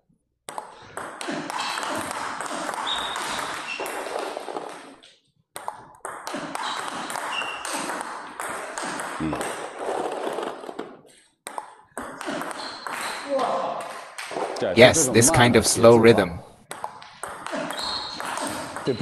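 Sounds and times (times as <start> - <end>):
table tennis ball clicks: 0.5 - 4.0, 11.5 - 13.2.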